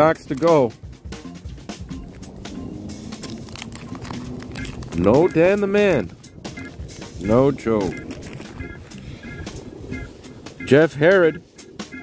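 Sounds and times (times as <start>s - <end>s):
trading cards clicking and rustling: 0.0s - 0.7s, 2.0s - 9.1s
background music with high notes: 0.4s - 12.0s.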